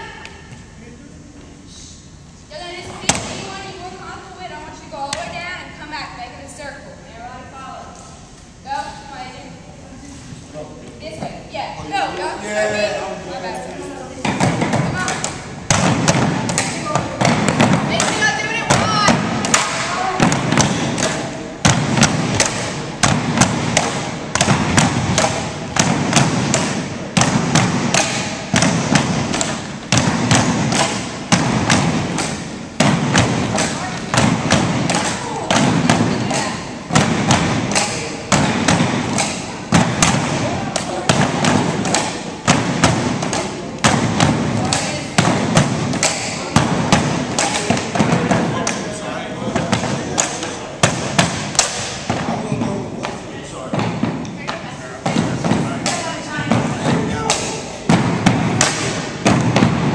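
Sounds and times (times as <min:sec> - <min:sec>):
bamboo poles knocking on wooden blocks: 0:14.3 - 0:48.3.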